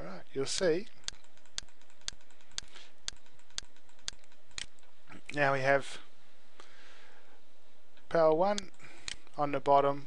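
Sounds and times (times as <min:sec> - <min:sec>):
computer mouse clicking: 0:00.6 - 0:04.9.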